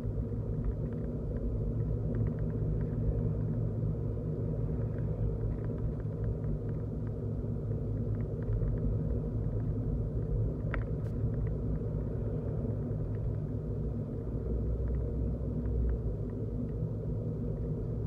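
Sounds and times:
car engine and road noise: 0:00.0 - 0:18.0
faint light ticks: 0:00.4 - 0:03.6, 0:04.7 - 0:13.5, 0:14.8 - 0:16.9.

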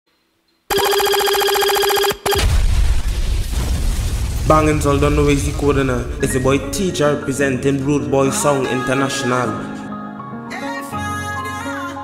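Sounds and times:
telephone ringtone trill: 0:00.7 - 0:02.5.

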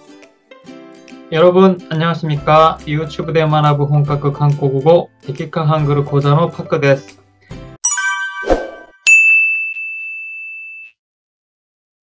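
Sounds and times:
bright multi-tone chime: 0:07.8 - 0:10.9
high ringing ding: 0:07.8 - 0:11.0.

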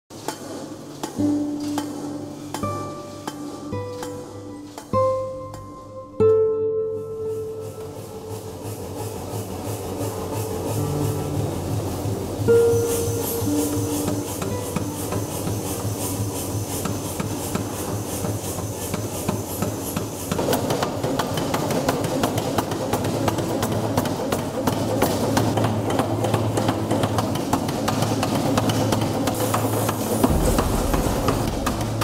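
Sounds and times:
power hammer striking metal: 0:00.1 - 0:04.9, 0:26.6 - 0:32.0.

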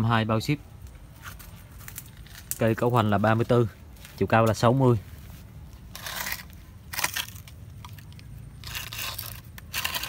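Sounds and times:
tree roots scraping on concrete: 0:00.8 - 0:10.0.

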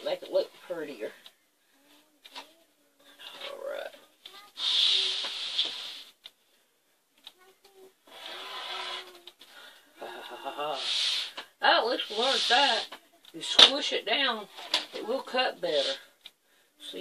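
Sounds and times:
person speaking: 0:07.2 - 0:16.1.

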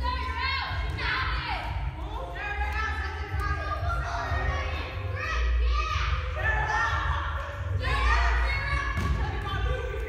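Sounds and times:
children shouting: 0:03.9 - 0:09.2.

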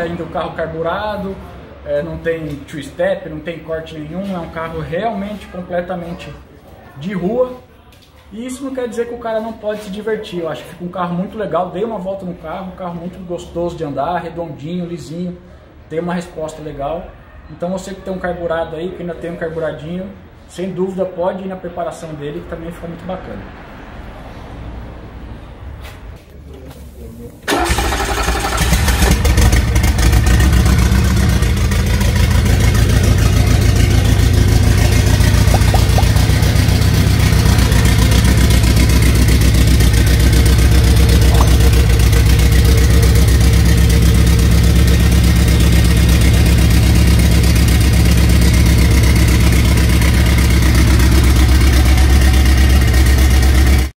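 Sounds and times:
car engine starting and idling: 0:27.4 - 0:53.9.

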